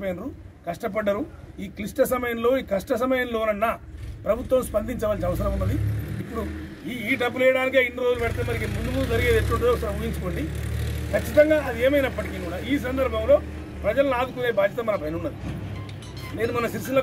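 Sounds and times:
man speaking: 0.0 - 15.4, 16.2 - 17.0.

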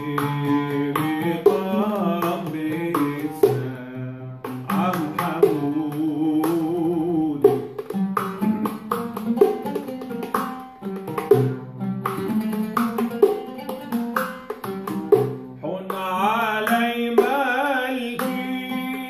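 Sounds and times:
oud plucking a melody: 0.0 - 19.0.

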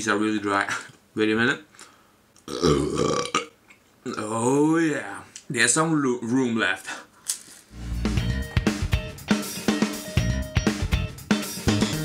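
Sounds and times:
man burping: 2.4 - 4.3.

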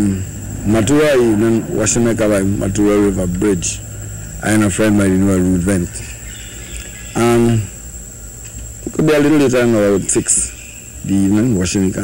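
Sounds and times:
man speaking: 0.0 - 3.8
low hum: 0.0 - 7.2
high-pitched whine: 0.0 - 12.0.

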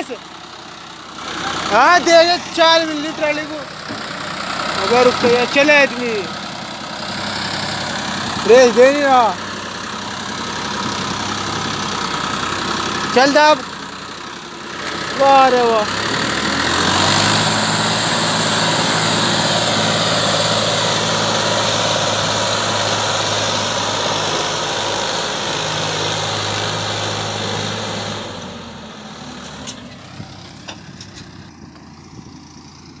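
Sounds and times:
tractor diesel engine running: 0.0 - 33.0.

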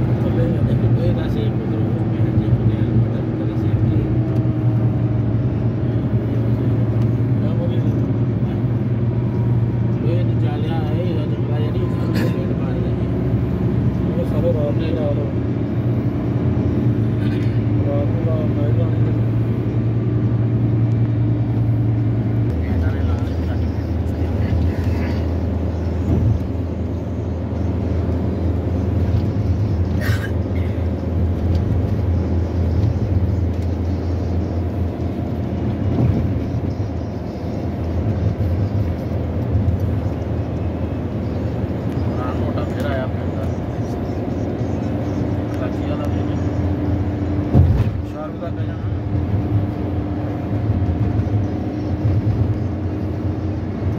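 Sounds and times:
car engine and road noise: 0.0 - 53.9.

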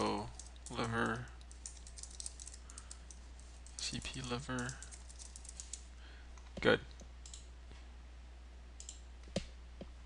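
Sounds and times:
steady low hum: 0.0 - 10.0
computer mouse clicks: 6.4 - 7.5, 8.8 - 9.5.

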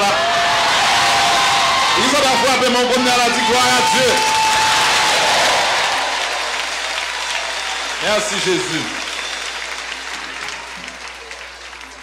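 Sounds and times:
congregation clapping: 0.0 - 12.0.

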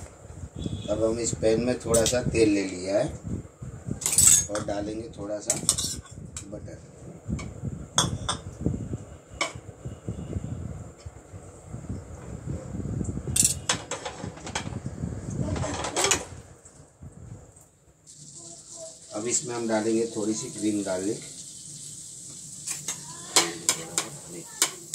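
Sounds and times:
utensils clinking against frying pan: 5.5 - 6.1, 13.4 - 14.8, 22.6 - 24.9
egg sizzling in a pan: 18.0 - 24.9.

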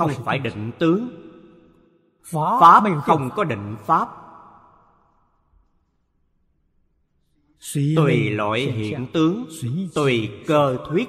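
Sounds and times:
man speaking: 0.0 - 1.2, 2.2 - 4.2, 7.6 - 11.0.

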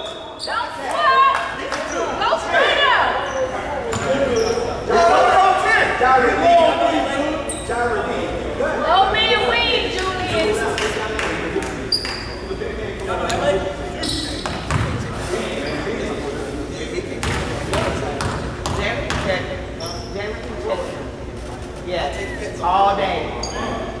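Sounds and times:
murmur of voices: 0.0 - 24.0.

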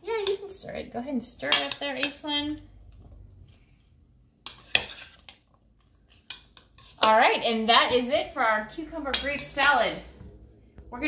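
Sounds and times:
spoon stirring cucumbers in bowl: 4.4 - 9.8.

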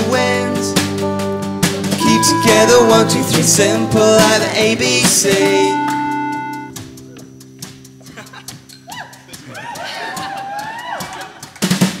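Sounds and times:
loud guitar strum: 0.0 - 7.0
held keyboard chord: 0.0 - 8.0
soft ticking percussion: 2.0 - 10.8.

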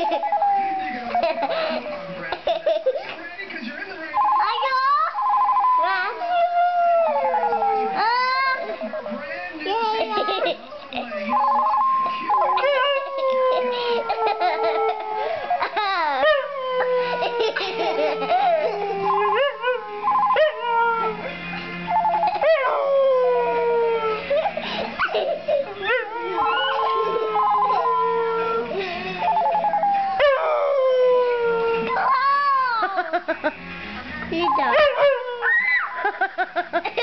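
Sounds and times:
phone ringtone melody: 4.2 - 6.0
dog howling: 5.2 - 8.7, 11.4 - 21.4, 22.0 - 32.9, 34.5 - 36.2.

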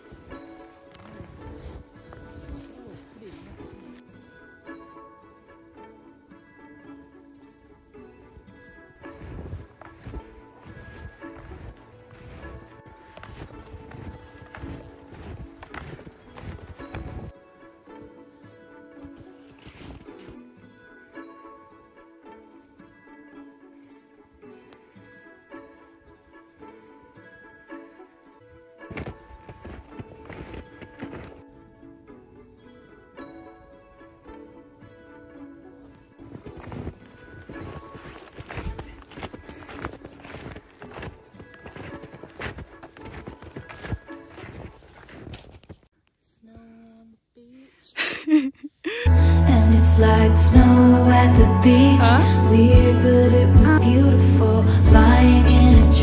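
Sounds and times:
footsteps crunching through snow: 0.0 - 4.9, 8.1 - 18.4, 19.0 - 20.5, 28.9 - 31.6, 35.8 - 45.9
background music with held tones: 0.0 - 45.3, 49.0 - 56.0.

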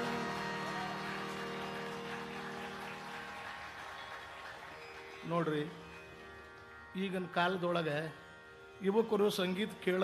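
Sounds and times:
tanpura drone: 0.0 - 10.0.

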